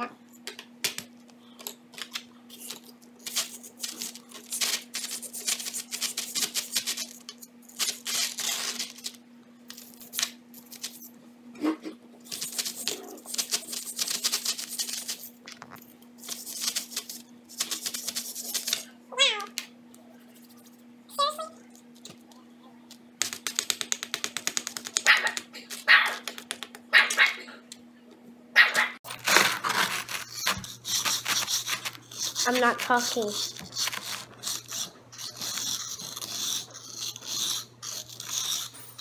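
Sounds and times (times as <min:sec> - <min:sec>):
faint steady hum: 0:00.0 - 0:39.0
plastic chisel scraping sand block: 0:29.1 - 0:38.8.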